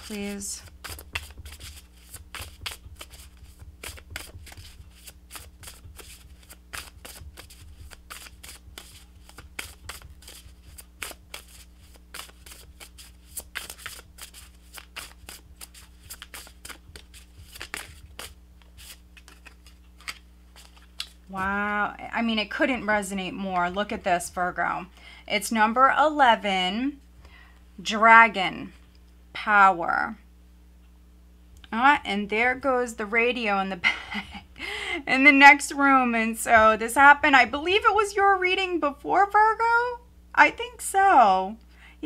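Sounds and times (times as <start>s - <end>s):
cards being shuffled: 0.0s - 21.5s.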